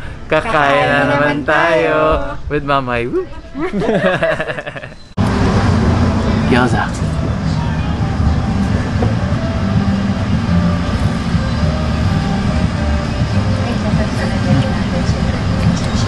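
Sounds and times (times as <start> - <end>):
low rumble of street traffic: 0.0 - 16.0.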